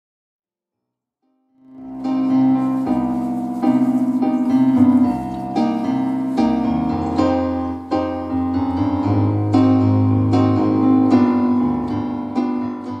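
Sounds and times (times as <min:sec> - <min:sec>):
digital piano chords ringing: 0:01.6 - 0:13.0.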